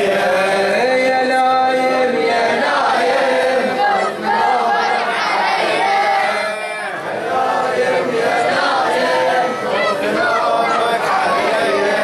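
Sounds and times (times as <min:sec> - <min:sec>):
group chanting religious song: 0:00.0 - 0:12.0.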